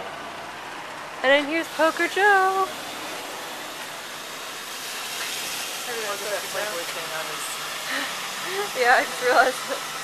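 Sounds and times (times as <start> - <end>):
electric fan running: 0.0 - 10.0.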